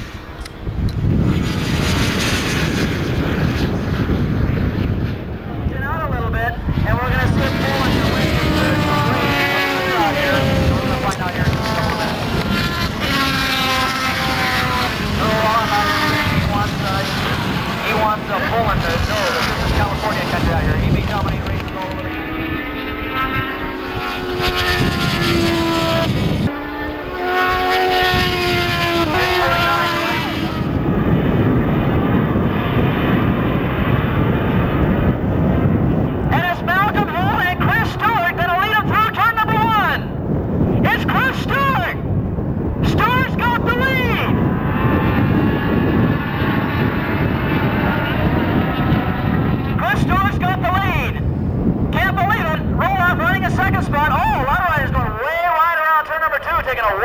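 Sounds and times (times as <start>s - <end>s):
motorcycle engines racing: 0.0s - 57.0s
public address announcer voice: 40.8s - 42.0s, 42.8s - 44.3s, 52.0s - 57.0s.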